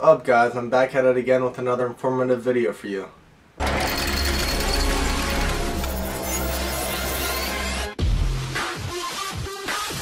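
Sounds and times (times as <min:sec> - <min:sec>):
fast mechanical clatter: 0:03.6 - 0:06.6.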